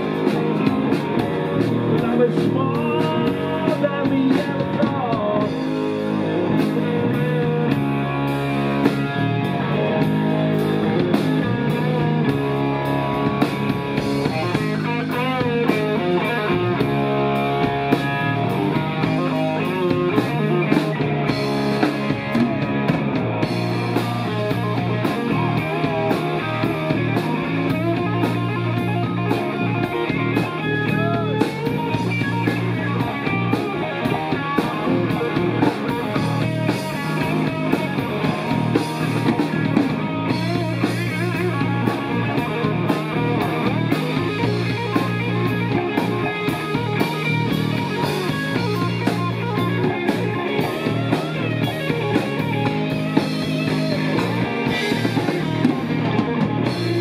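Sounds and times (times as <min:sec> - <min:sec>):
drum kit: 0:00.0 - 0:57.0
electric bass: 0:00.0 - 0:57.0
electric guitar: 0:00.0 - 0:57.0.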